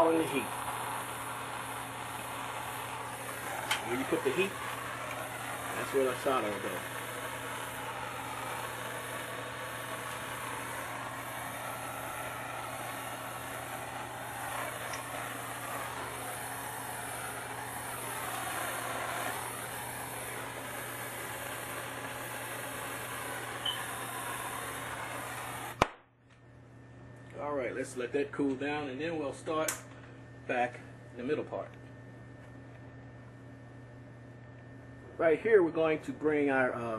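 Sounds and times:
gas torch hissing: 0.0 - 26.0
torch shut-off click: 0.0 - 26.0, 29.6 - 30.0.

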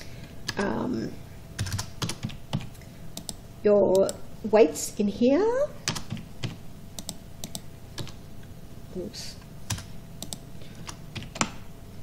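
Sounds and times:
keyboard keys tapping: 5.9 - 8.2, 9.7 - 11.6.

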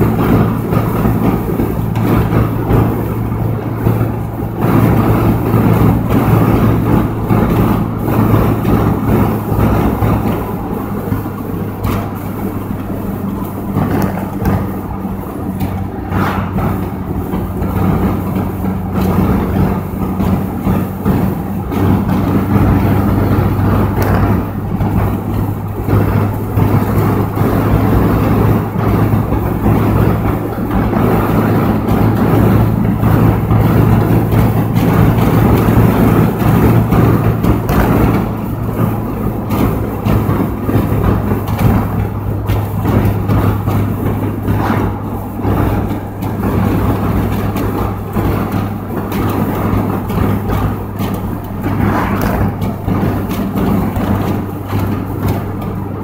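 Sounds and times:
car engine hum: 0.0 - 56.0
road rumble: 0.0 - 56.0.

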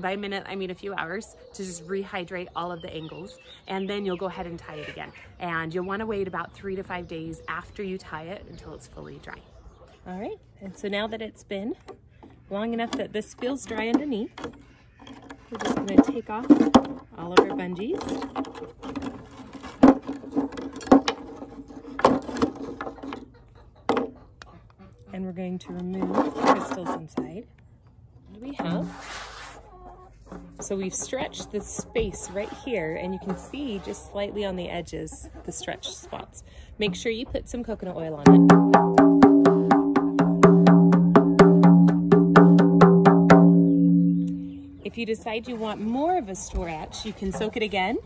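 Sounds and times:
low drum ring: 38.2 - 44.8
hand drum strokes: 38.3 - 44.7.

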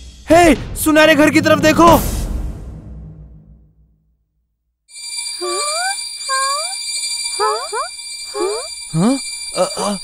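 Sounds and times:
high shimmering ring: 4.9 - 10.0
twinkling sparkles: 5.0 - 10.0.

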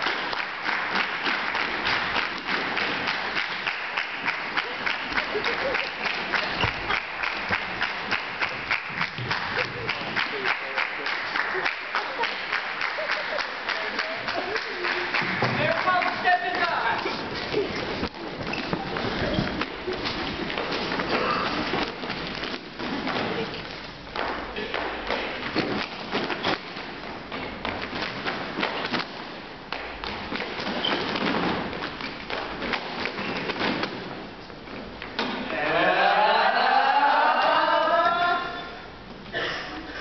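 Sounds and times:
feet stomping and tapping on stage: 0.0 - 35.5.

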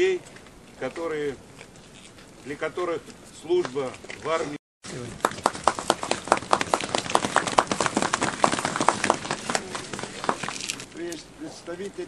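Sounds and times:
people applauding: 5.2 - 10.8.

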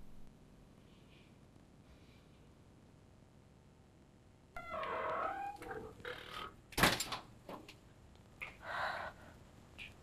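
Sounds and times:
door creaking: 4.6 - 7.2.

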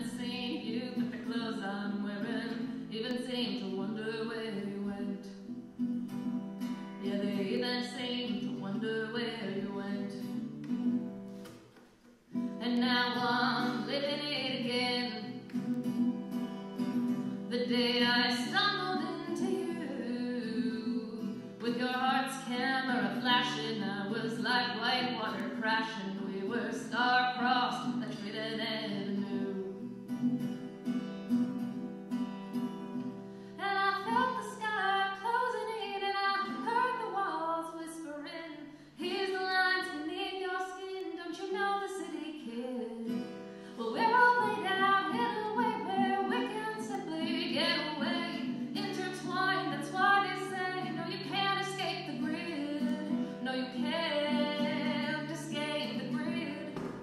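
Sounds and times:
woman singing: 0.0 - 5.5, 6.9 - 10.6, 12.4 - 15.8, 16.8 - 30.7, 33.6 - 57.0
acoustic guitar strumming: 0.0 - 37.0, 42.9 - 57.0.

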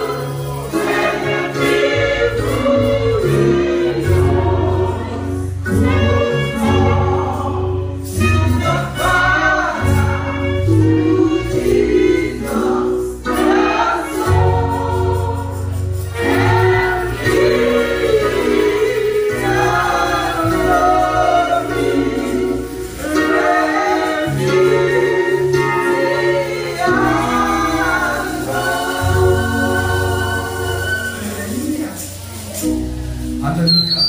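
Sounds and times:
band accompaniment: 0.0 - 34.0
gospel choir singing: 0.0 - 34.0.

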